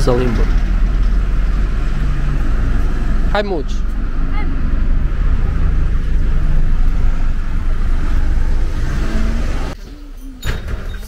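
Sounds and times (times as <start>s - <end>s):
motor vehicle engine rumbling: 0.0s - 11.0s.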